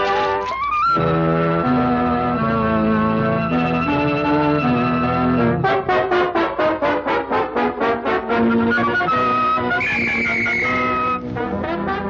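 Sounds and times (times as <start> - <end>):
orchestral cartoon music with brass: 0.0 - 12.0.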